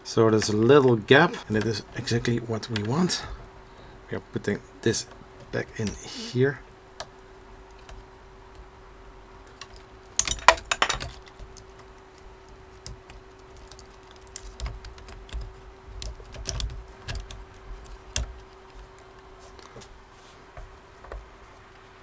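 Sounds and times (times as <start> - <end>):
faint steady hum: 0.0 - 22.0
small plastic parts clicking: 9.4 - 19.2.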